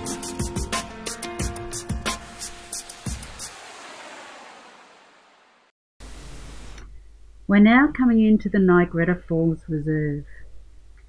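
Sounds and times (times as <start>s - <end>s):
hissy washy music sting: 1.5s - 5.6s.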